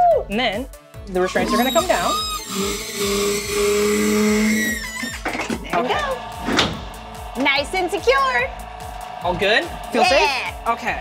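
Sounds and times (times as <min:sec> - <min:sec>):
low hum: 0:06.0 - 0:11.0.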